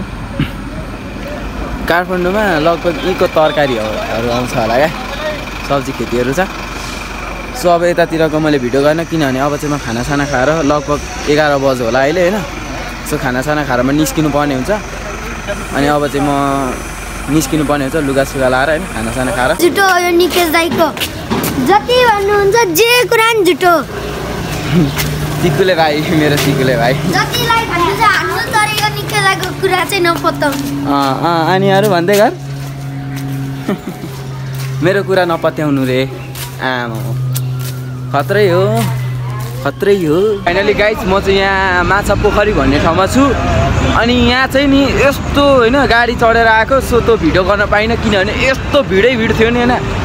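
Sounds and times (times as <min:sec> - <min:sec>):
low street rumble: 0:00.0 - 0:50.0
vehicle engine running: 0:00.0 - 0:50.0.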